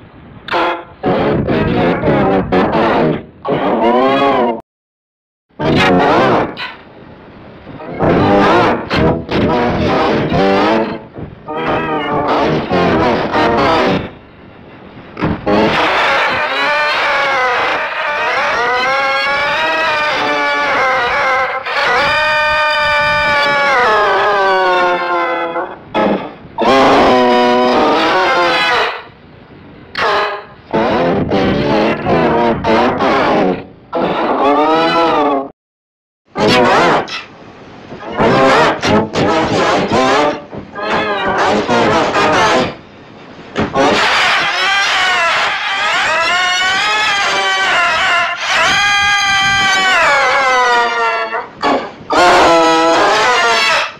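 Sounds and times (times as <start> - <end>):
pitch-shifted distorted voice: 0.5 - 4.6, 5.6 - 6.8, 7.7 - 14.2, 15.2 - 29.2, 30.0 - 35.5, 36.4 - 42.8, 43.6 - 53.9.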